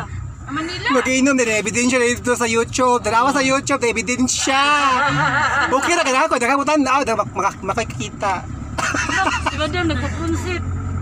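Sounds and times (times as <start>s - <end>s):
car engine drone and road noise: 0.0s - 11.0s
voices talking in a car: 0.0s - 11.0s.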